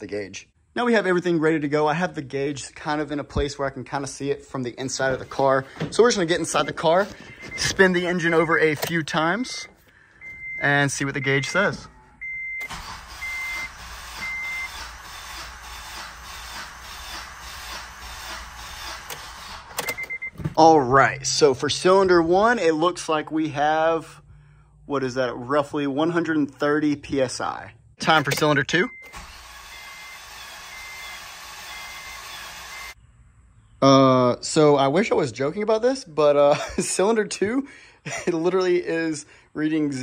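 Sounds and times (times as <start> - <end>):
car chime beeps: 6.5 - 14.8, 19.9 - 20.4, 28.2 - 29.2
engine cranking on starter: 12.6 - 20.1, 28.3 - 29.8.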